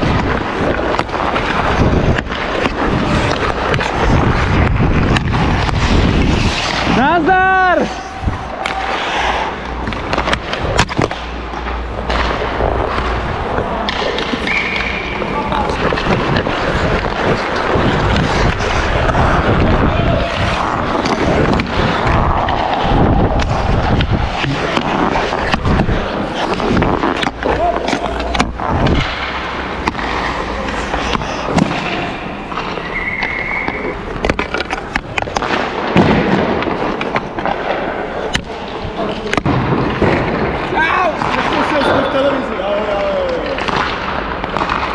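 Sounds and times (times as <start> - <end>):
skate blades scraping ice: 0.0 - 42.6
hockey sticks and pucks clacking: 0.0 - 44.9
players' voices: 0.3 - 36.0, 36.7 - 44.9.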